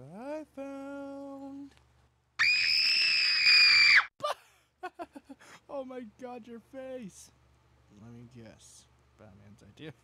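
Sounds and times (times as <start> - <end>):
high-pitched scream: 2.4 - 4.1.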